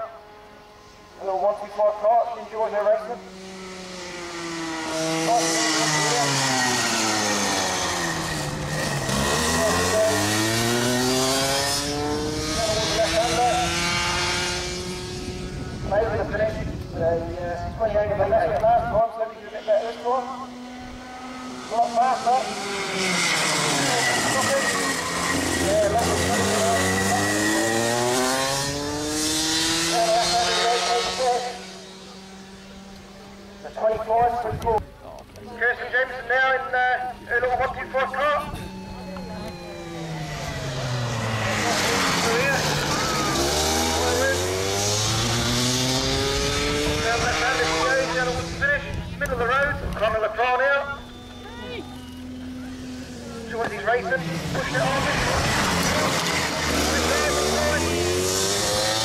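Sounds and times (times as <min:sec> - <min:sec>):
kart engine accelerating: 0:00.0 - 0:59.0.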